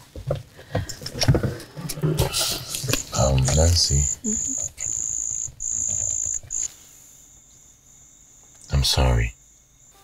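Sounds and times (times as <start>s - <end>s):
crickets trilling: 2.2s - 10.0s.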